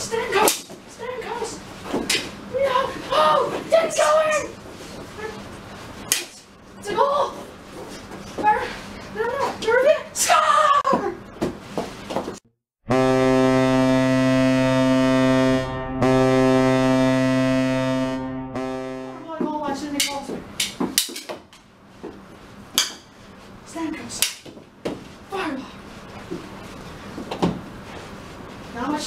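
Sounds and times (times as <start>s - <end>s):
hockey goal horn: 12.9s - 19.4s.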